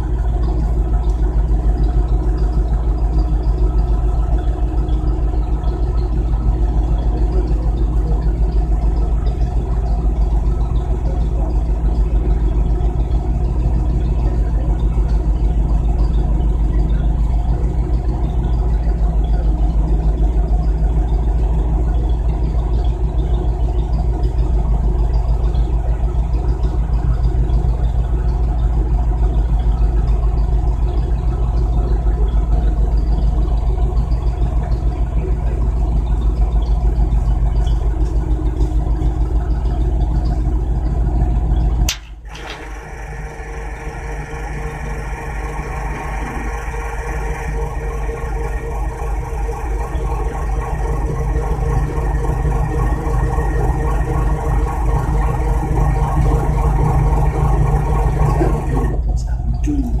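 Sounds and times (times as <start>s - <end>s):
vehicle engine idling: 0.0s - 60.0s
sharp click: 41.9s - 42.7s.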